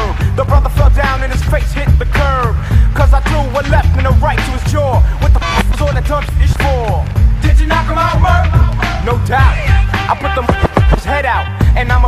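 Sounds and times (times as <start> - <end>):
hip hop drum and bass beat: 0.0 - 12.0.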